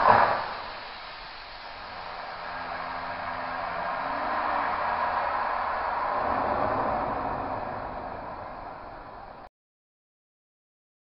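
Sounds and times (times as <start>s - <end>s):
fire extinguisher hissing: 0.0s - 9.5s.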